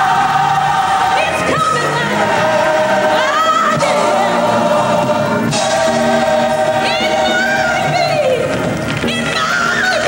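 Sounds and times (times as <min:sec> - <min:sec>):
gospel choir singing: 0:00.0 - 0:08.5
female lead voice singing: 0:01.2 - 0:05.0.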